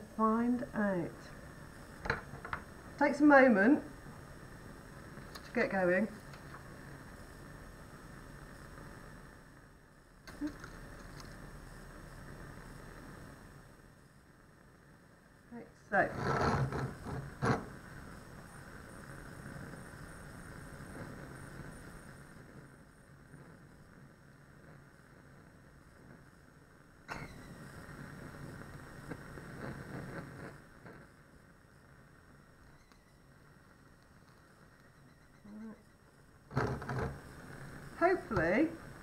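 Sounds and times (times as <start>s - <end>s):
bunsen burner flame rushing: 0.0s - 39.0s
magnesium ribbon burning: 0.0s - 39.0s.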